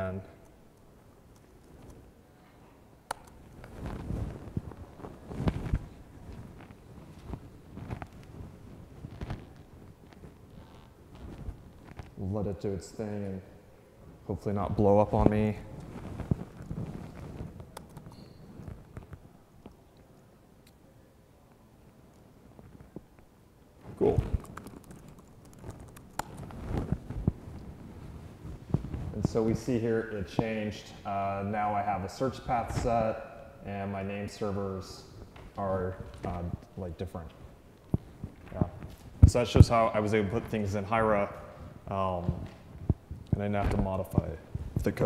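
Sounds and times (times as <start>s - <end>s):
thumps and rustles of movement: 3.6s - 12.2s, 15.1s - 19.3s, 23.8s - 29.6s, 42.2s - 45.0s.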